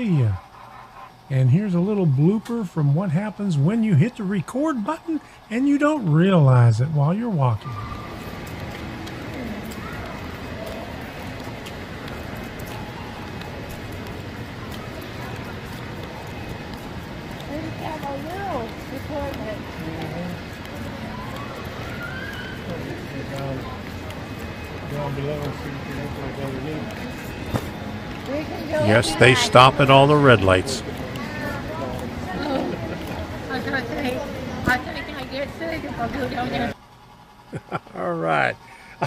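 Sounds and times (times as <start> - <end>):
people talking: 0.0 - 0.4, 1.3 - 8.0, 17.4 - 21.8, 22.6 - 27.1, 28.2 - 36.8, 37.6 - 39.0
steady background noise: 0.0 - 39.0.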